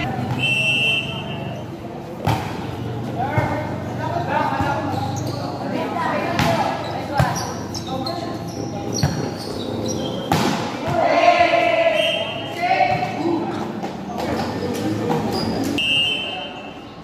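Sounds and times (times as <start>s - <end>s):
volleyball being hit: 10.2s - 11.6s
players and spectators shouting: 10.8s - 13.5s.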